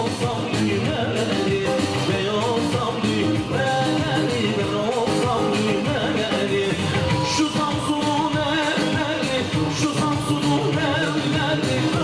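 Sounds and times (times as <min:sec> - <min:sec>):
live band playing folk dance tune: 0:00.0 - 0:12.0
person singing: 0:00.0 - 0:12.0.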